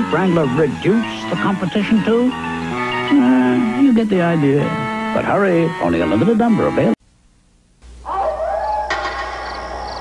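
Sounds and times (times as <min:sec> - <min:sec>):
animal howling: 0:08.0 - 0:10.0.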